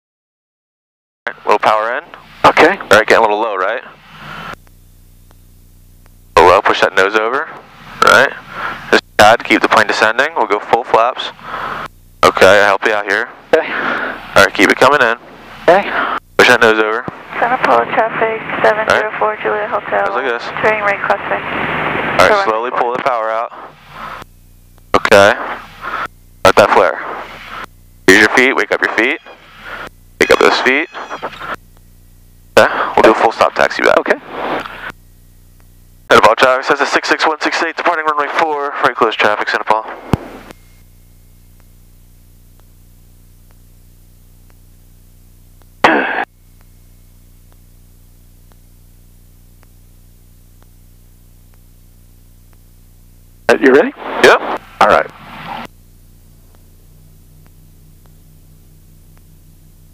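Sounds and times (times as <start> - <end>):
aircraft engine idling hum: 1.4 - 35.9.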